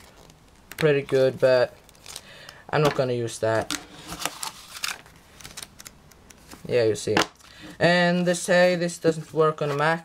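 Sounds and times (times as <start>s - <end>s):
paper and cardboard rustling: 3.6s - 5.7s
pages flipping: 3.6s - 6.7s.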